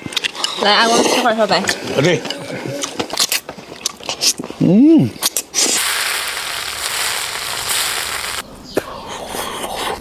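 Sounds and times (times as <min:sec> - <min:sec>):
hot oil sizzling: 0:05.6 - 0:08.4.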